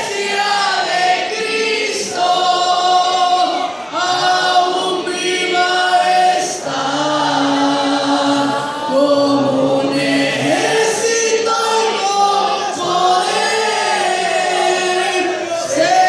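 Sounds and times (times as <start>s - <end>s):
boy singing into a microphone: 0.0s - 16.0s
boys singing together: 0.0s - 16.0s.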